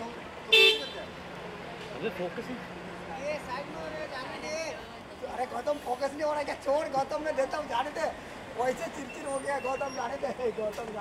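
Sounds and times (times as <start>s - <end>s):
murmur of voices: 0.0s - 11.0s
street noise: 0.0s - 11.0s
car horn beep: 0.5s - 1.1s.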